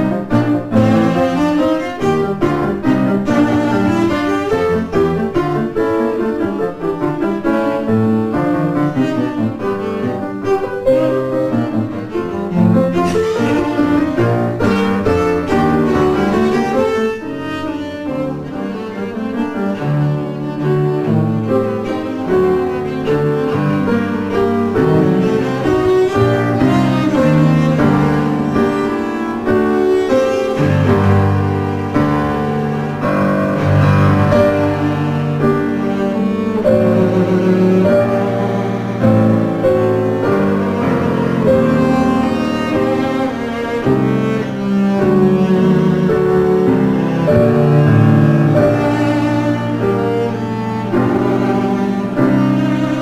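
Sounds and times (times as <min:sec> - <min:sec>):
cello playing quick bowed notes: 0:00.0 - 0:53.0
piano accompaniment: 0:00.0 - 0:53.0.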